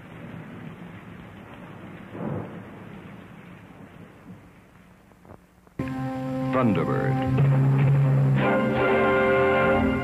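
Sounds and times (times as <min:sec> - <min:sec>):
thunder rumble: 0:00.0 - 0:05.6
rain hissing: 0:00.0 - 0:10.0.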